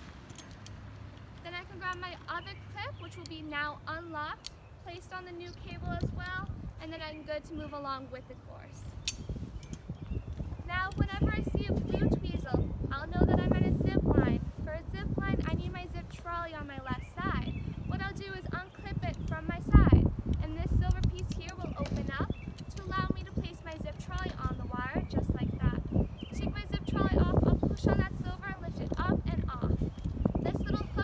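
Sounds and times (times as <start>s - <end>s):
metal clips clicking and clinking: 0.2s - 2.2s, 20.7s - 22.9s
woman talking: 1.4s - 9.0s, 10.6s - 29.8s, 30.4s - 31.0s
sharp click: 9.0s - 11.1s.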